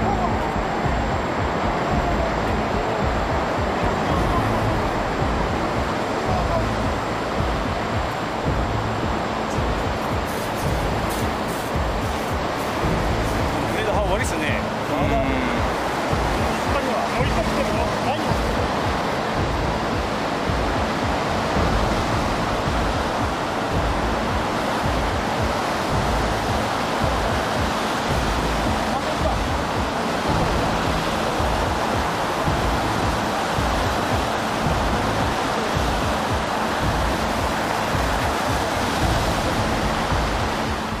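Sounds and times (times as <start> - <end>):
water rushing and churning: 0.0 - 41.0.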